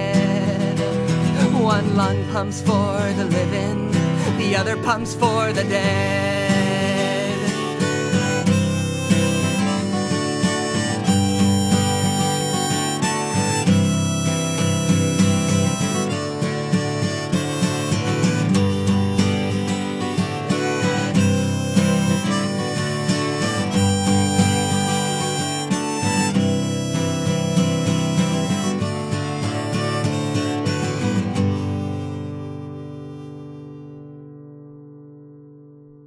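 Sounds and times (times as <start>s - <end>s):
harmonica melody: 0.0s - 34.9s
acoustic guitar: 0.0s - 36.0s.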